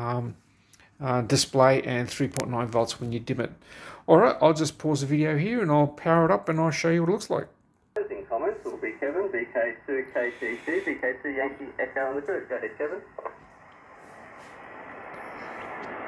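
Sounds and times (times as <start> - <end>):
man talking over radio: 8.0 - 13.4
radio static hiss: 8.0 - 16.0.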